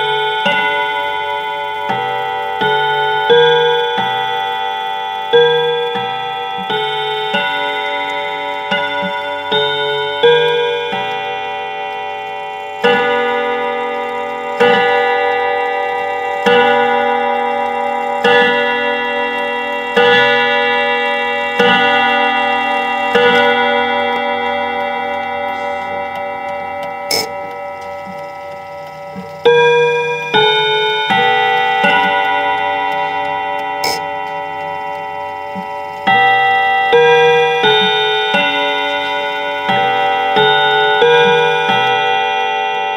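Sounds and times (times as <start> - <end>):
clock chimes ringing: 0.0 - 42.9
clock ticking: 0.0 - 42.9.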